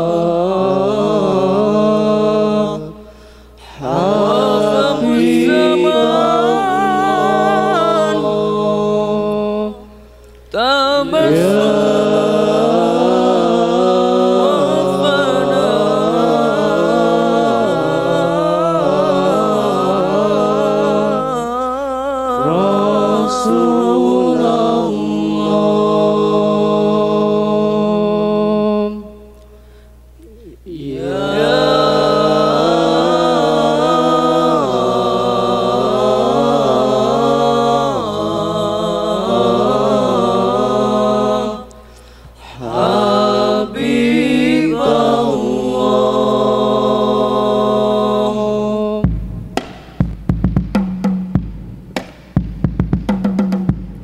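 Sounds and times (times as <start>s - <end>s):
men singing unaccompanied: 0.0s - 3.0s, 3.6s - 9.9s, 10.5s - 29.1s, 30.3s - 41.8s, 42.4s - 49.1s.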